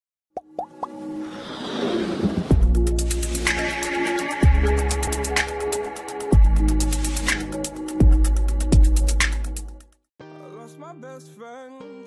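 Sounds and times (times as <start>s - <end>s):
plop sound effects: 0.4s - 1.0s.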